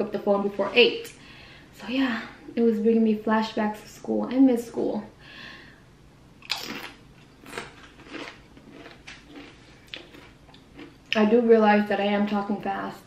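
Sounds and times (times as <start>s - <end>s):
chip crunching and chewing: 6.4s - 11.2s.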